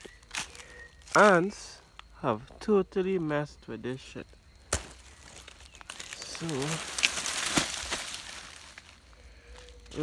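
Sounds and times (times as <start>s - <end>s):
dry earth crumbling: 4.6s - 10.0s
sharp crack: 5.8s - 8.8s.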